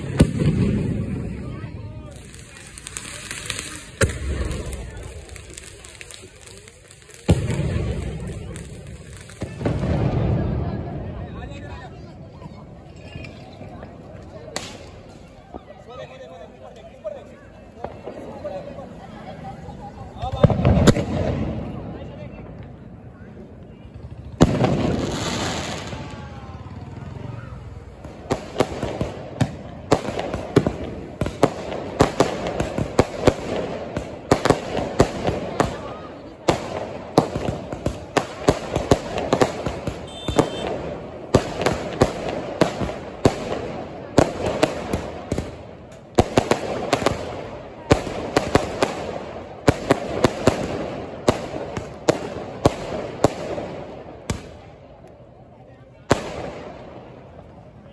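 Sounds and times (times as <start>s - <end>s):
firework crackling bangs: 0.0s - 12.2s, 13.5s - 15.9s, 17.0s - 55.0s, 56.0s - 57.6s.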